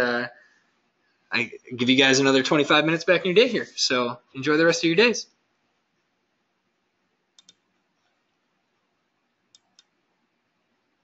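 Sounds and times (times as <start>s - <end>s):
faint clicks: 7.4s - 8.2s.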